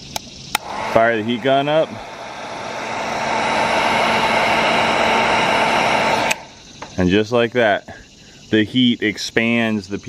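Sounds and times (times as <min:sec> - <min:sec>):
heat gun blowing air: 0:00.5 - 0:06.6.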